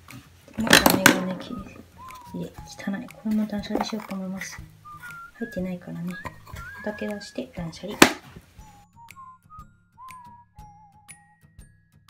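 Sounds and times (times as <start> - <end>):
containers clicking in plastic drawer: 0.6 - 1.8
sharp clack of object dropped: 0.6 - 1.8, 8.0 - 8.3
whistled melody background music: 0.6 - 12.0.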